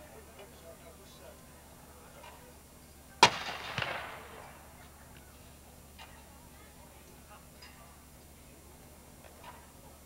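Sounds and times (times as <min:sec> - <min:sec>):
gunshot cracks with echo: 0:03.2 - 0:04.6.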